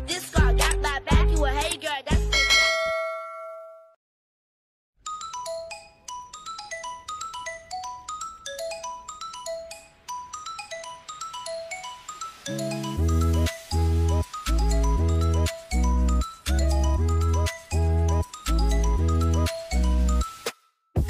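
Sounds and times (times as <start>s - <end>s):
plinking bell-like melody: 2.3s - 4.0s, 5.0s - 20.4s
intro music with a beat: 11.7s - 21.0s.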